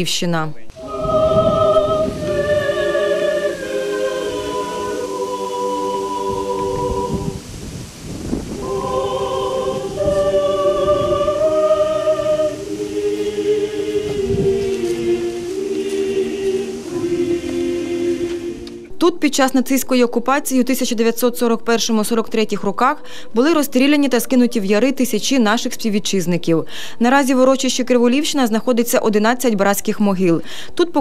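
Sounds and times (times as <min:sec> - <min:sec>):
choir singing long chords: 0:00.7 - 0:07.7, 0:08.3 - 0:19.0.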